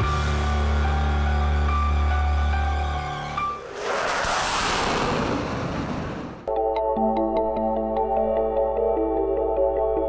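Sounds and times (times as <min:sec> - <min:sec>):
whoosh transition effect: 0:03.5 - 0:06.5.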